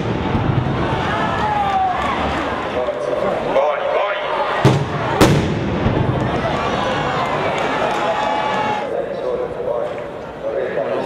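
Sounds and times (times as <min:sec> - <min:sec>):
firework bang: 0:00.0 - 0:01.6, 0:04.6 - 0:06.8
crowd din with voices: 0:00.0 - 0:11.0.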